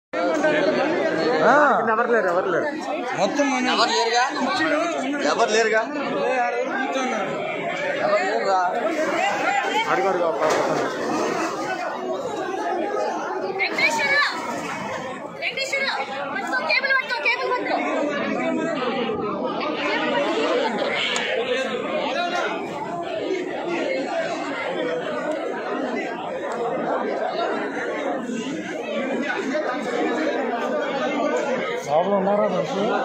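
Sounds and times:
crowd chatter: 0:00.1 - 0:33.0.

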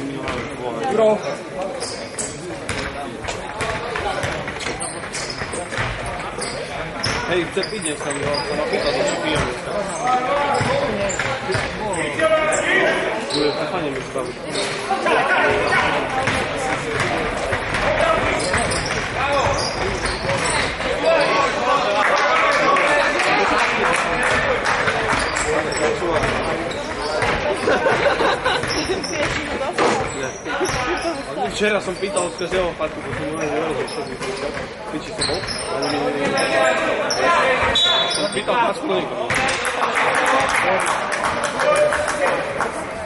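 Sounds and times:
voices of players and spectators: 0:00.0 - 0:43.0
sneakers squeaking: 0:00.2 - 0:21.6, 0:24.8 - 0:38.6
basketball bouncing on wooden floor: 0:28.6 - 0:30.1
referee's whistle: 0:37.8 - 0:38.4.

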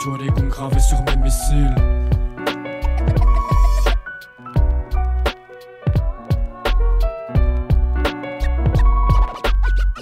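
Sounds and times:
hip hop beat: 0:00.0 - 0:10.0
turntable scratches: 0:02.3 - 0:04.4, 0:07.8 - 0:10.0.

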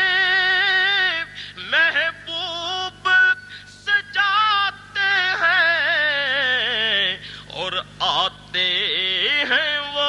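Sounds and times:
person singing unaccompanied: 0:00.0 - 0:10.0.

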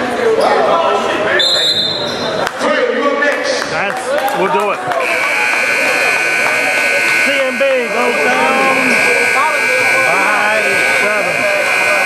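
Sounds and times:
brief high tone: 0:05.0 - 0:12.0
people shouting: 0:05.0 - 0:12.0
scoreboard horn steady tone: 0:05.0 - 0:12.0.

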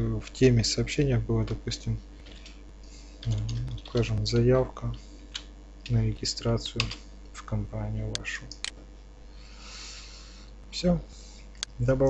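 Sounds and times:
faint keyboard typing: 0:00.2 - 0:02.6, 0:03.2 - 0:06.0, 0:06.6 - 0:07.0.

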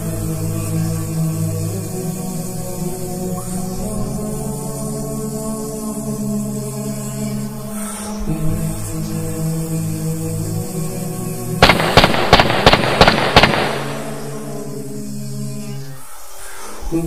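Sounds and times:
chanting voices drone: 0:00.0 - 0:17.0
loud sharp bangs: 0:11.6 - 0:14.5.

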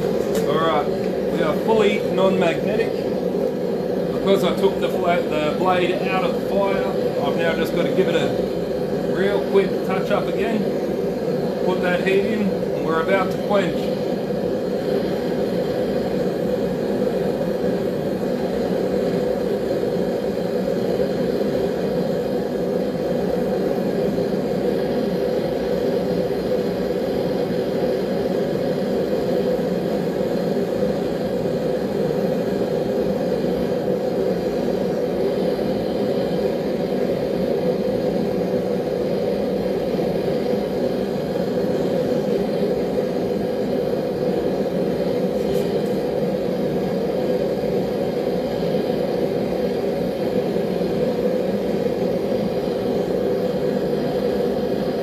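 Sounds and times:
forge burner rushing: 0:00.0 - 0:55.0.

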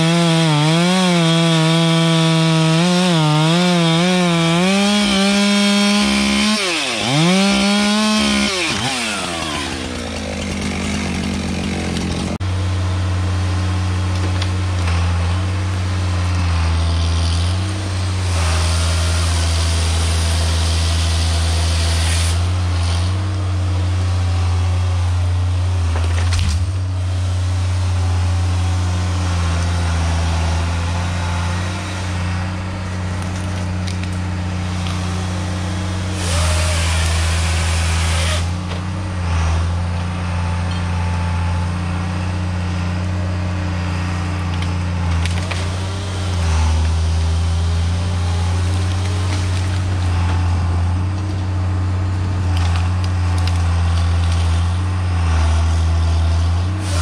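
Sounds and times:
chainsaw revving through log: 0:00.0 - 0:25.9, 0:27.0 - 0:57.0
diesel engine of logging machine: 0:00.0 - 0:57.0.

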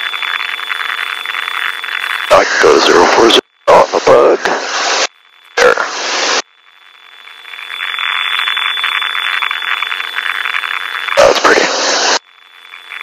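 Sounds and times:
crackling radio static: 0:00.0 - 0:13.0.

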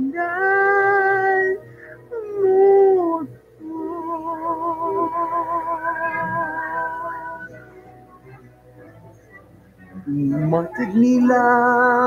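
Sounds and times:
person singing karaoke: 0:00.0 - 0:07.6, 0:09.9 - 0:12.0
backing track music: 0:00.0 - 0:12.0
wavering vibrato tone: 0:03.6 - 0:07.8.

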